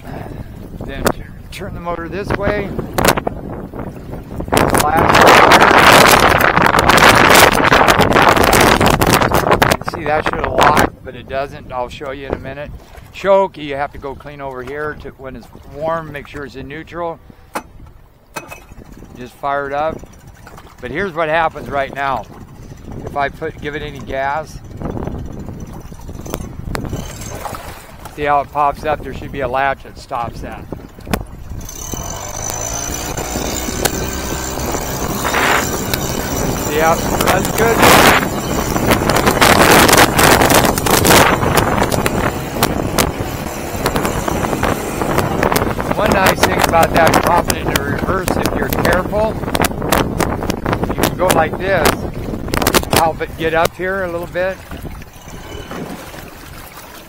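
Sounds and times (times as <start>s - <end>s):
outboard motor running: 0.0s - 57.0s
wind buffeting microphone: 0.0s - 57.0s.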